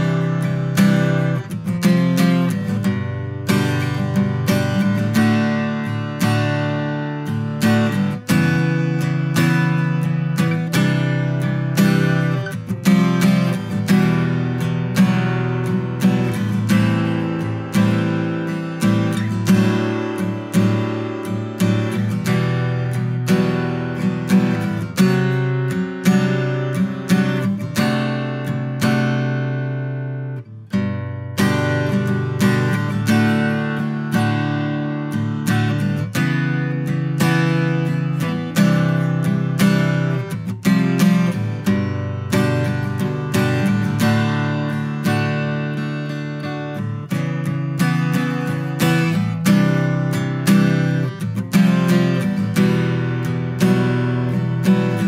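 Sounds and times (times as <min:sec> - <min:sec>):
acoustic guitar strumming chords: 0:00.0 - 0:55.0.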